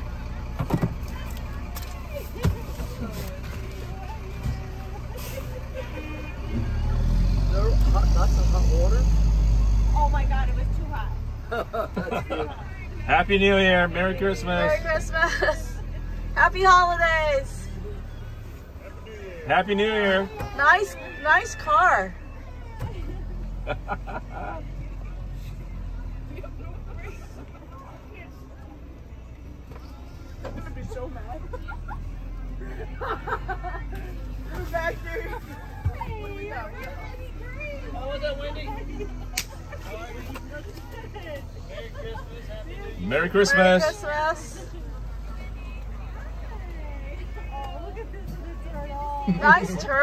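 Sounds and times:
faint voices and laughter: 0:00.0 - 0:50.0.

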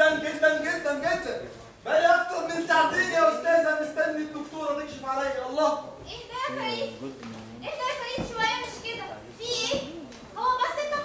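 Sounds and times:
people talking on stage: 0:00.0 - 0:11.0.

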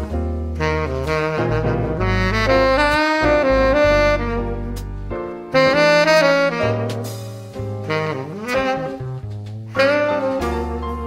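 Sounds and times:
electronic backing with bass: 0:00.0 - 0:11.0
tenor saxophone jazz melody: 0:00.0 - 0:11.0.

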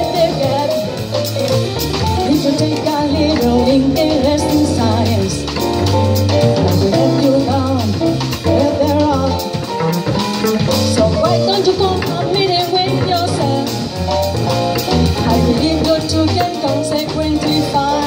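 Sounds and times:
woman singing: 0:00.0 - 0:00.9, 0:02.2 - 0:05.6, 0:06.6 - 0:09.6, 0:10.9 - 0:13.8, 0:15.2 - 0:18.0
drum kit cymbal beat: 0:00.0 - 0:18.0
piano: 0:00.0 - 0:18.0
walking double bass: 0:00.0 - 0:18.0.

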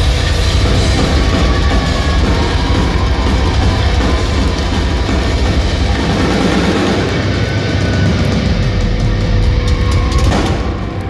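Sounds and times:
heavy metal band playing: 0:00.0 - 0:11.0.

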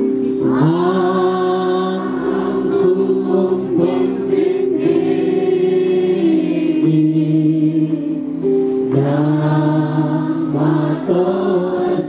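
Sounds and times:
crowd singing a hymn: 0:00.0 - 0:12.0.

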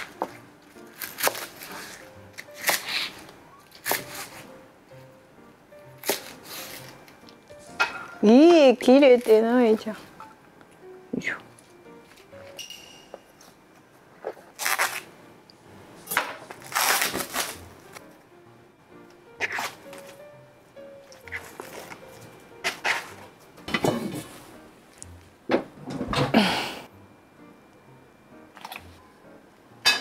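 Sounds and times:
soft background music: 0:00.0 - 0:30.0
food scraping on cutting board: 0:22.6 - 0:23.2.

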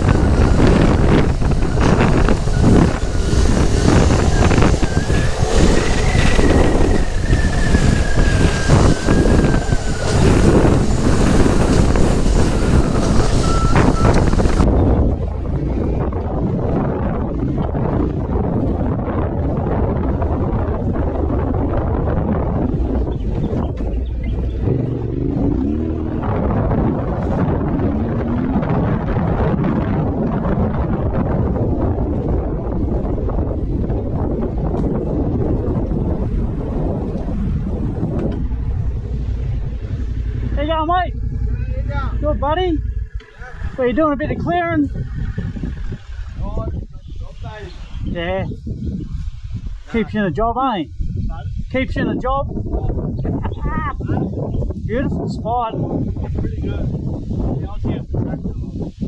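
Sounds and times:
motorcycle engine running: 0:00.0 - 0:46.6
wind buffeting microphone: 0:00.0 - 0:59.0.

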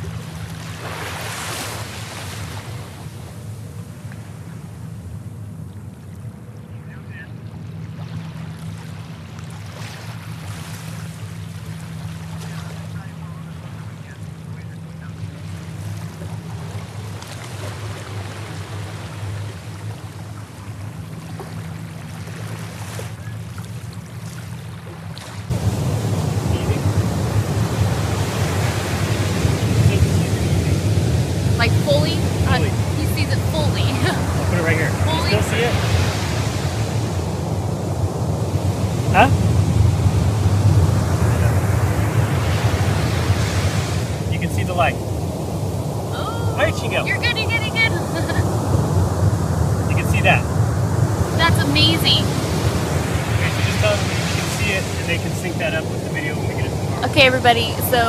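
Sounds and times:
ocean surf: 0:00.0 - 0:58.0
wind: 0:00.0 - 0:58.0.

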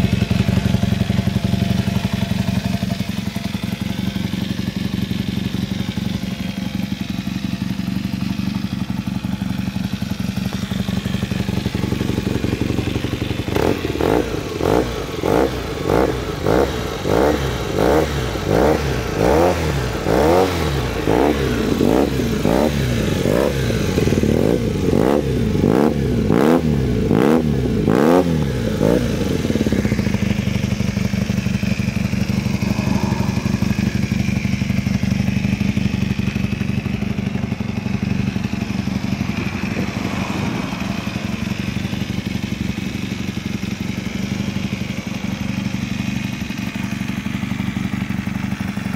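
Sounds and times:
motorcycle engine revving and idling: 0:00.0 - 0:48.9.

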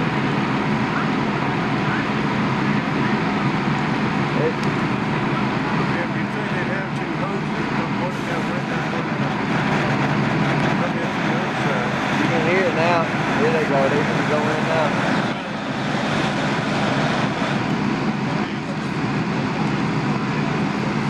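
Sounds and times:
fire engine humming: 0:00.0 - 0:21.0.

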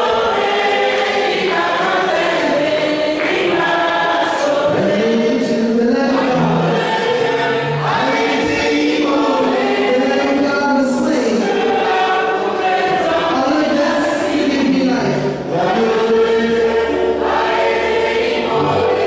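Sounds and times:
group singing a gospel hymn: 0:00.0 - 0:19.0
man singing into a microphone: 0:04.6 - 0:06.8, 0:08.0 - 0:11.6, 0:13.3 - 0:16.6.

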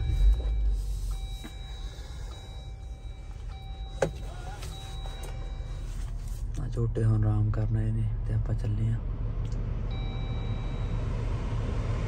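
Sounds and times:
car engine idling: 0:00.0 - 0:06.5.

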